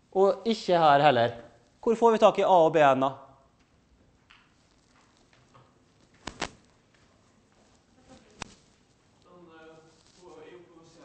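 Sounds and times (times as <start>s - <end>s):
sharp click: 6.2s - 6.6s.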